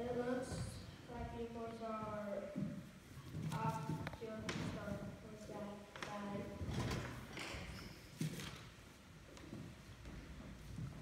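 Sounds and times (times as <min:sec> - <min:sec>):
children speaking on a stage: 0:00.0 - 0:06.7.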